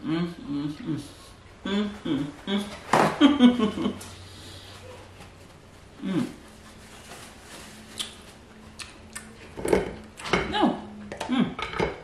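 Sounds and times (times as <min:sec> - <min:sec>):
woman humming: 0:00.0 - 0:02.8, 0:06.0 - 0:06.5, 0:10.5 - 0:12.0.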